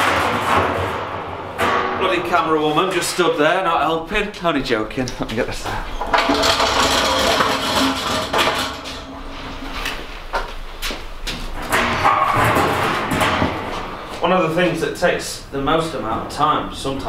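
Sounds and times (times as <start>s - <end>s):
thin sheet metal scraping and rattling: 0.0s - 3.4s, 5.9s - 10.3s, 11.5s - 14.1s.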